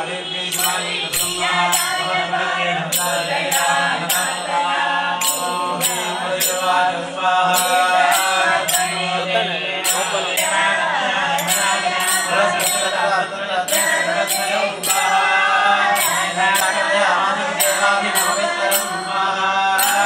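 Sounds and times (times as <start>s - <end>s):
women singing into a microphone: 0.0s - 20.0s
hand cymbals clinking: 0.5s - 20.0s.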